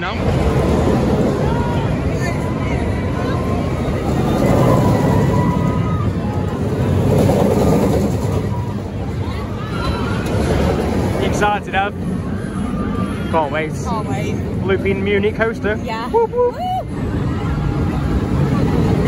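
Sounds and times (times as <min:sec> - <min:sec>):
crowd voices: 0:00.0 - 0:19.0
roller coaster rumble: 0:00.0 - 0:19.0.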